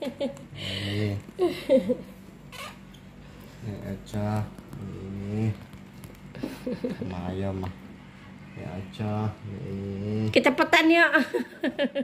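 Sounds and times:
person humming: 9.4s - 10.3s.

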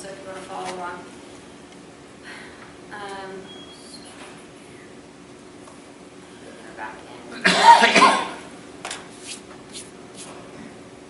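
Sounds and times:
person coughing: 7.4s - 8.5s.

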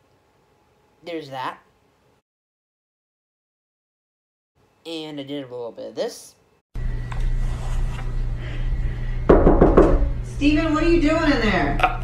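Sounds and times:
steady low hum: 6.8s - 12.0s
knocks on a door: 9.3s - 10.2s.

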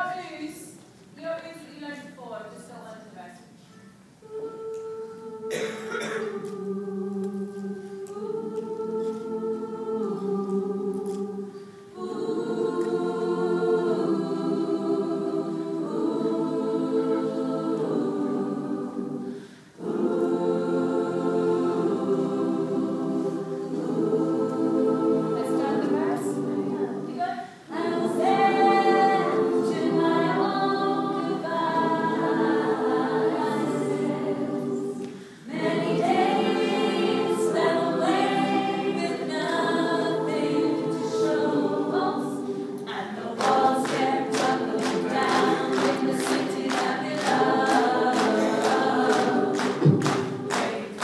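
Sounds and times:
group singing held notes: 2.8s - 51.0s.

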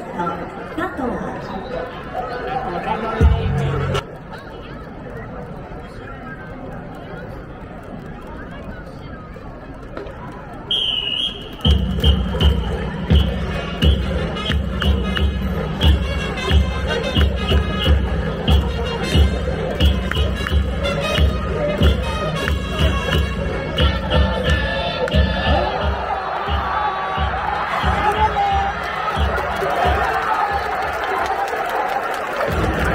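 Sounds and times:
crowd cheering: 8.2s - 32.9s
long whistle blast: 10.7s - 12.3s
short whistle blips: 10.7s - 12.5s.

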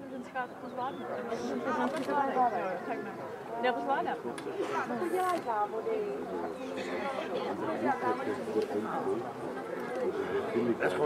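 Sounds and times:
indistinct chatter of people: 0.0s - 11.0s.

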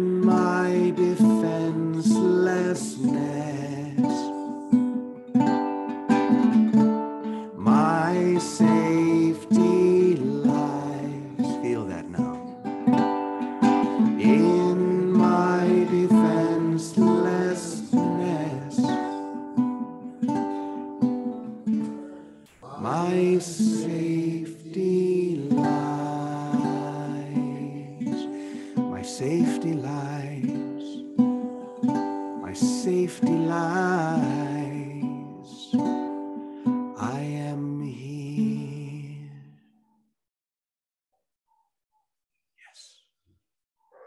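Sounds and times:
man singing: 0.0s - 4.7s, 7.4s - 12.6s, 13.7s - 20.5s, 21.7s - 36.2s, 36.9s - 39.6s
strummed ukulele chords: 0.0s - 39.4s.

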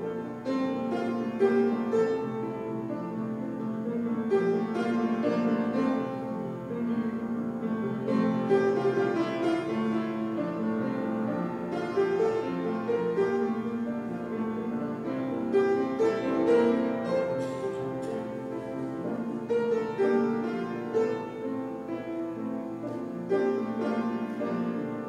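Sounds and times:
piano music: 0.0s - 25.0s.

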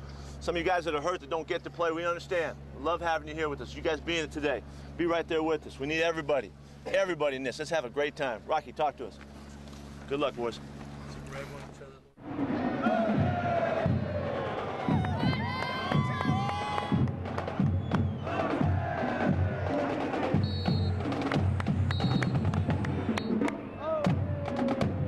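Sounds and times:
stadium crowd cheering: 12.4s - 25.0s
marching band drumming: 13.0s - 25.0s.

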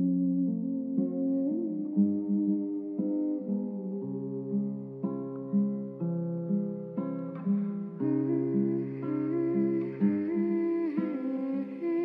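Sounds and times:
soft hummed melody: 7.4s - 12.0s.

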